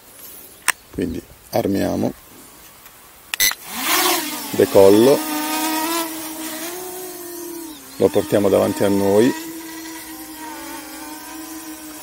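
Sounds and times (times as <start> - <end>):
drone propellers whining: 3.4 - 12.0.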